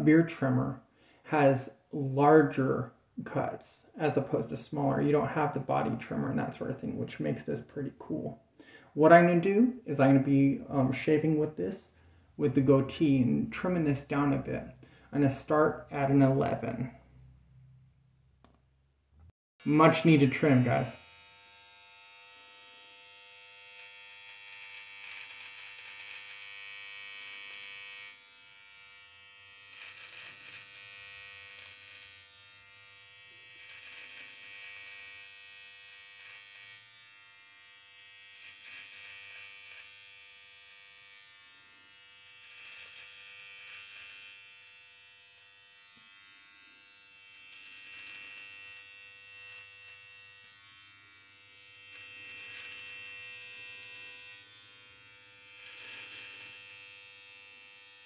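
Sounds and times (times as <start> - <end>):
hair trimmer buzzing: 19.6 - 58.0.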